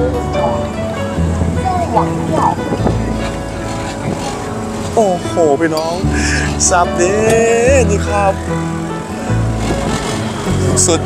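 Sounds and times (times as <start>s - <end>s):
background music: 0.0s - 11.0s
boat engine humming: 0.0s - 11.0s.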